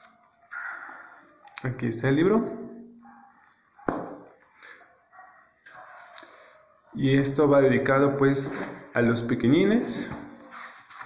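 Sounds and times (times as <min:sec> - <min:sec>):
book rustling: 0:08.4 - 0:08.9, 0:10.0 - 0:11.0.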